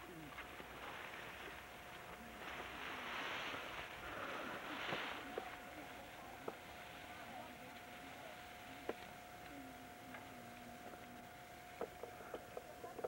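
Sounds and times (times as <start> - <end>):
dry grass rustling: 0.0 - 13.0
faint steady tone: 0.0 - 13.0.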